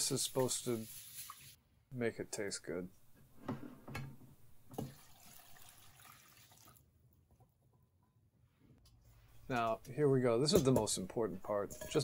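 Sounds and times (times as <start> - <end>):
water pouring into pot: 0.3 - 1.6, 4.8 - 6.9
water splashing and dripping: 0.3 - 1.6.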